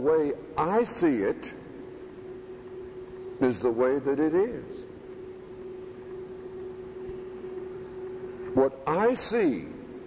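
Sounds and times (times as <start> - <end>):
background hiss: 0.0 - 10.0
steady low hum: 0.0 - 10.0.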